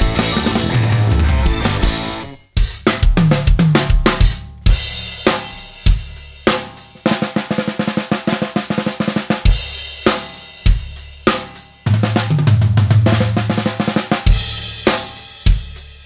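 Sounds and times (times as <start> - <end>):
intro music: 0.0 - 2.5
drum kit playing: 0.0 - 16.0.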